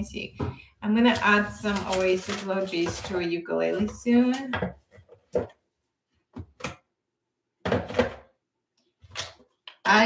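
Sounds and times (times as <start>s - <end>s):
objects thunking and clattering: 7.6s - 8.3s.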